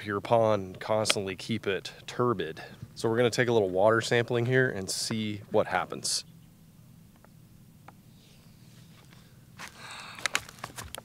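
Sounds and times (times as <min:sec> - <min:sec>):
plastic bottle crackling: 0:09.6 - 0:11.0.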